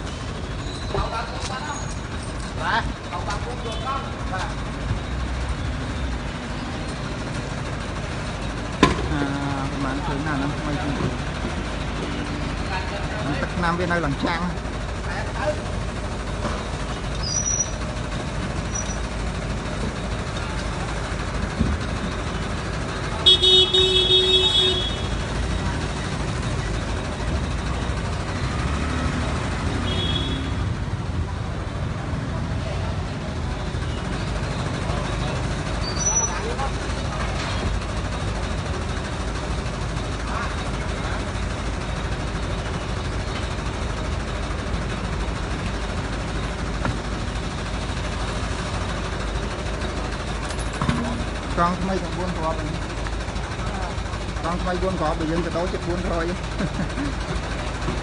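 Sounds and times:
street traffic: 0.0 - 58.0
vehicle engine idling: 0.0 - 58.0
vehicle horn: 23.2 - 25.2, 29.7 - 30.7.

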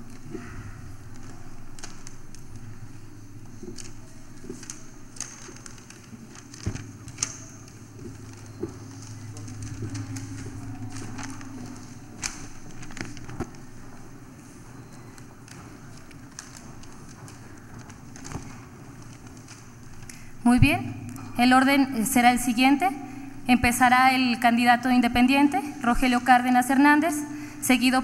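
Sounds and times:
paper rustling and clicking: 0.0 - 20.4
steady low hum: 0.0 - 28.0.

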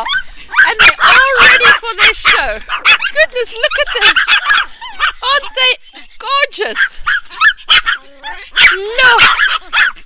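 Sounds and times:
dogs whining: 0.0 - 5.6, 7.1 - 10.0
small dogs yapping: 0.0 - 5.8, 6.6 - 10.0.

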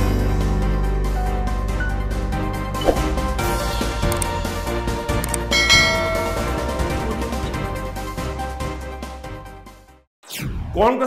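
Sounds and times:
background music: 0.0 - 10.0
notification bell chime: 5.5 - 7.6.

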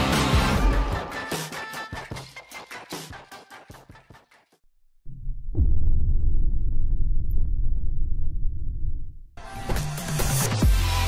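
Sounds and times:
deep rumbling transition effect: 5.1 - 9.4.

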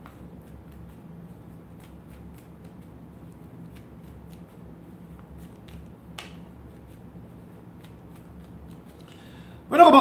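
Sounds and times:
cards being shuffled: 0.0 - 9.3
low steady hum: 0.0 - 10.0.

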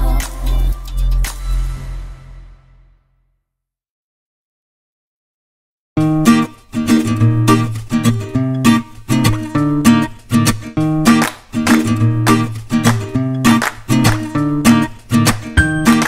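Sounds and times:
strummed acoustic guitar: 6.0 - 16.0.

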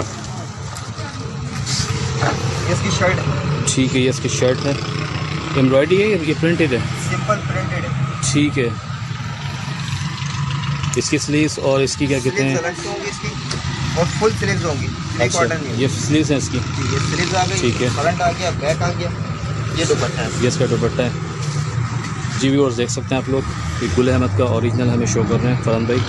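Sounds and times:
indistinct voices: 0.0 - 26.0
people talking: 2.6 - 4.9, 5.5 - 8.8, 11.0 - 21.2, 22.3 - 26.0.

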